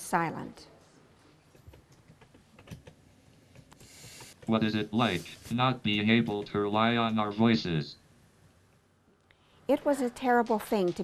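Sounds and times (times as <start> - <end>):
keyboard typing: 1.5 - 4.6.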